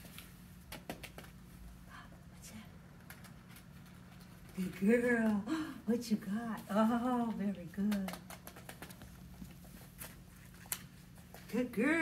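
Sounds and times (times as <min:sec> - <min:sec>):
puppy feet pattering on foam mat: 0:06.3 - 0:11.6.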